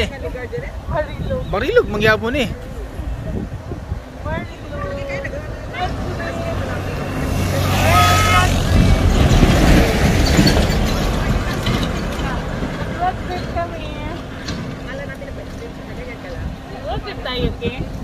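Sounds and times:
truck engine hum: 0.0s - 18.0s.

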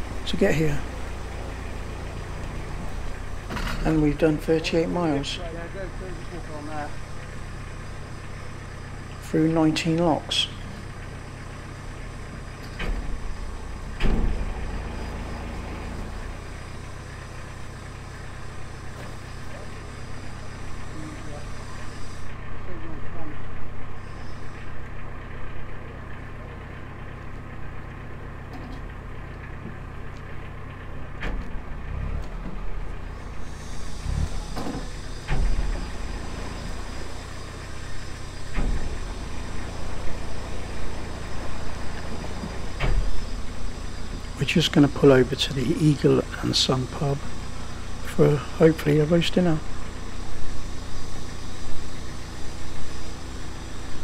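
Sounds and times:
diesel engine running steadily: 0.0s - 54.0s.

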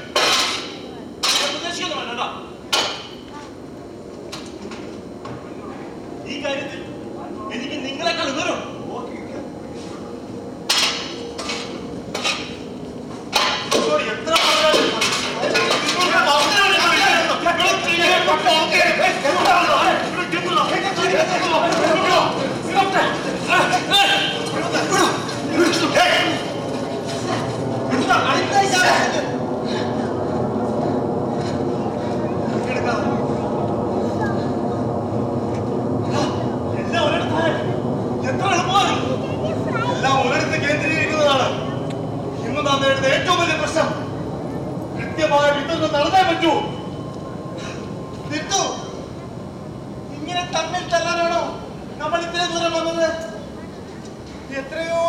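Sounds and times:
loud machinery rumbling: 2.5s - 54.5s
metal tools clanging: 13.3s - 17.2s
men calling out: 13.8s - 26.7s
shouting voices: 13.8s - 26.7s.

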